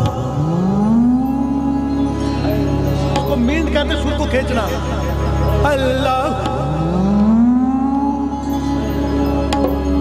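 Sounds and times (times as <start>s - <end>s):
low drone: 0.0s - 10.0s.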